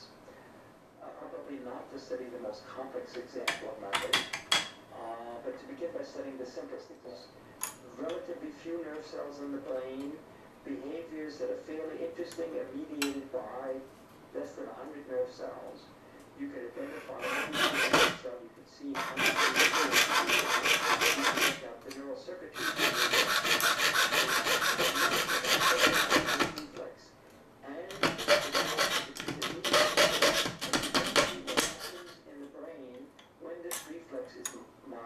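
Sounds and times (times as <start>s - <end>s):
saw cutting wood: 16.8s - 18.3s, 19.0s - 21.6s, 22.6s - 26.7s, 27.9s - 32.2s.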